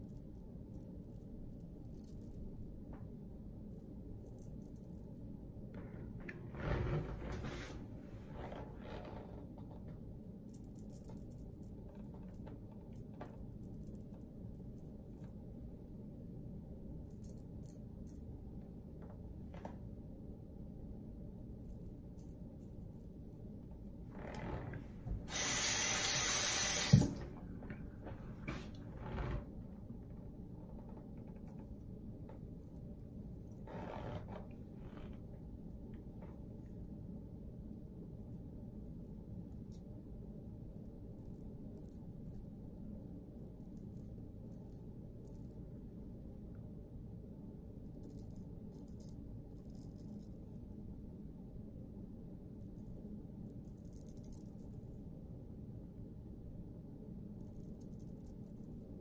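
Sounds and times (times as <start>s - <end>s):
tap running: 24.2s - 29.4s.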